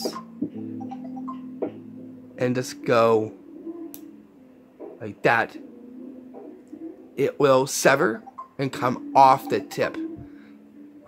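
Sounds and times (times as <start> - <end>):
soft sustained chord music: 0.0 - 11.0.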